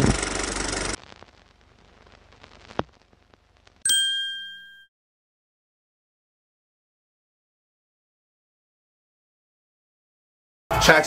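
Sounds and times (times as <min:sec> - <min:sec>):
bright metallic ding: 0:03.9 - 0:04.9.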